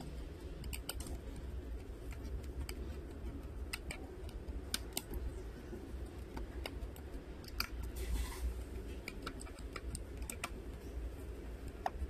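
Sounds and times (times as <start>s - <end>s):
screwdriver ticking: 0.6s - 5.2s.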